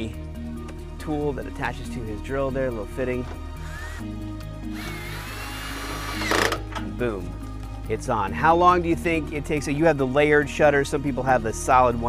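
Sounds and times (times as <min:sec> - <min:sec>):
background music: 0:00.0 - 0:12.0
cordless drill whining: 0:03.6 - 0:06.6.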